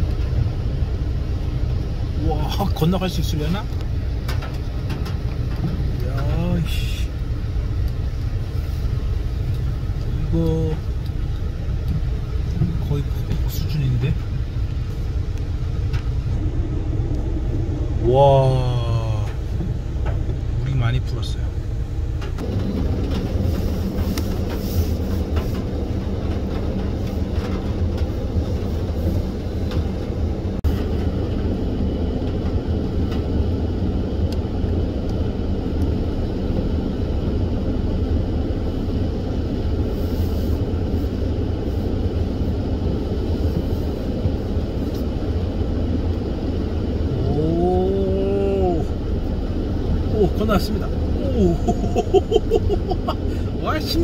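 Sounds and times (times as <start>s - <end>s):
tyres rumbling: 0.0s - 54.0s
vehicle engine running: 0.0s - 54.0s
rushing floodwater: 38.8s - 54.0s.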